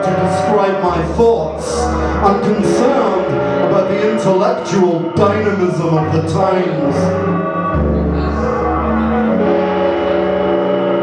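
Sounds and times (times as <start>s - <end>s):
ambient guitar drone: 0.0s - 11.0s
deep low tone: 0.0s - 11.0s.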